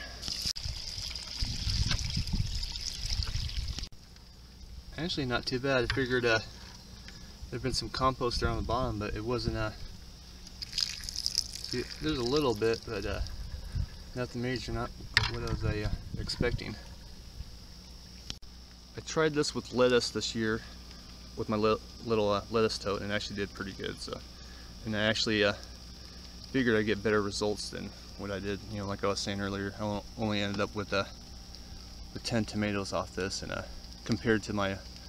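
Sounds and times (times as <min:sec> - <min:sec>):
low outdoor hum: 0:00.0 - 0:35.0
water pouring from plastic bucket: 0:00.2 - 0:03.9, 0:10.6 - 0:13.2.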